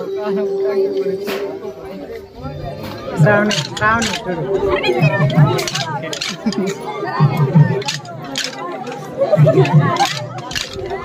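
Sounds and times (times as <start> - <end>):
crowd chattering: 0.0 - 11.0
wooden sticks clacking: 3.2 - 11.0.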